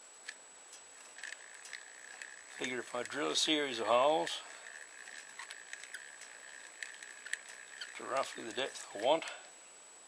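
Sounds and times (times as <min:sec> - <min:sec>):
faint background hiss: 0:00.0 - 0:10.0
thin high whine: 0:00.7 - 0:09.7
light ticks: 0:04.5 - 0:09.4.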